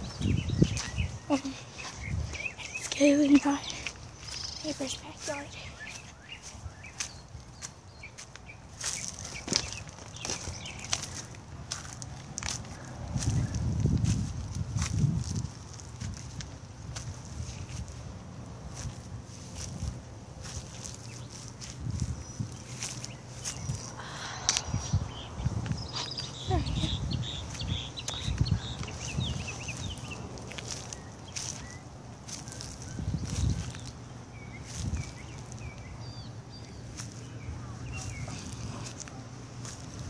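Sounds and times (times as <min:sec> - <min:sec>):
footsteps across a yard: 0:00.0 - 0:40.0.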